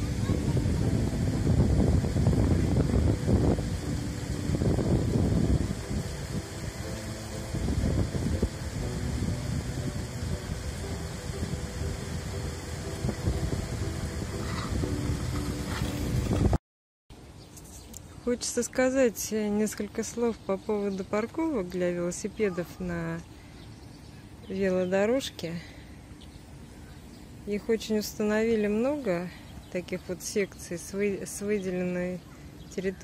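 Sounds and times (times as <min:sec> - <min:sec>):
faint steady musical tones: 0:00.0 - 0:16.5
wind rumbling on microphone: 0:00.0 - 0:16.6.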